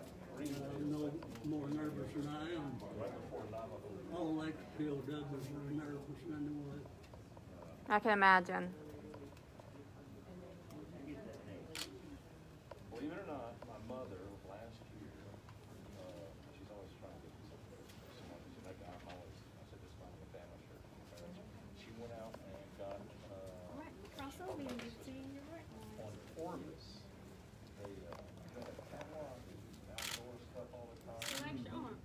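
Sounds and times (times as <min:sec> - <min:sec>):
quiet voices talking: 0:00.0 - 0:32.0.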